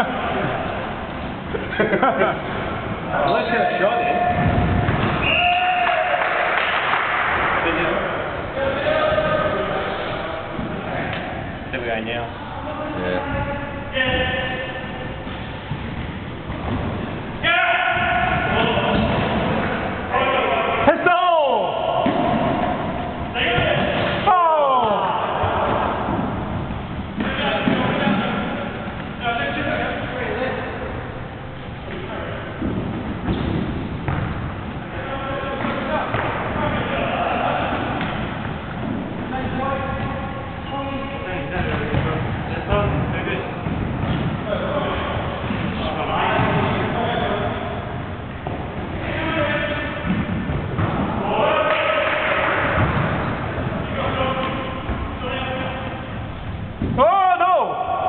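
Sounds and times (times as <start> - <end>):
players shouting: 17.4 - 26.4, 50.8 - 54.8.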